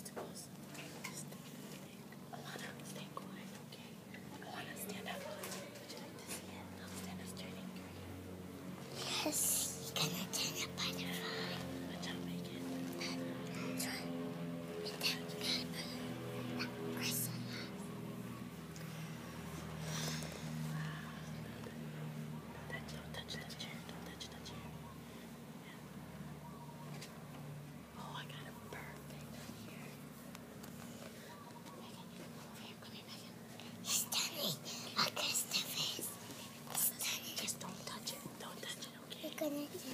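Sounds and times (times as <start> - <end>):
whispering voices: 0.0 - 8.1, 9.0 - 18.0, 20.7 - 25.9, 27.9 - 30.0, 31.5 - 39.9
low hum: 6.5 - 30.2.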